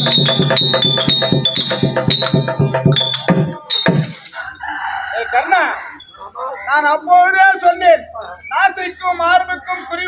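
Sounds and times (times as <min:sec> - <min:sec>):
hand drum strikes: 0:00.0 - 0:04.2
rooster crowing: 0:04.2 - 0:06.1.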